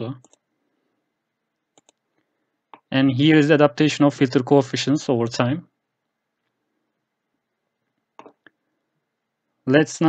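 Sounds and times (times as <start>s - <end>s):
computer mouse clicks: 0.2s - 0.4s, 1.7s - 2.9s, 8.2s - 8.6s.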